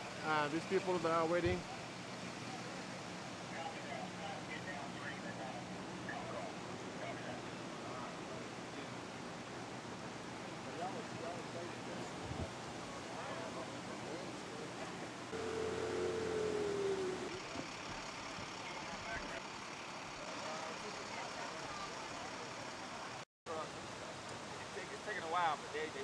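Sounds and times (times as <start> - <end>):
steady outdoor noise: 0.0 - 26.0
faint voices: 10.8 - 23.2
held tone: 15.4 - 17.4.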